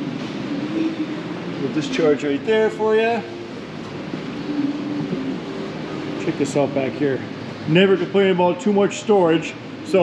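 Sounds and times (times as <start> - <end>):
faint hum: 0.0 - 10.0
ventilation hiss and rumble: 0.0 - 10.0.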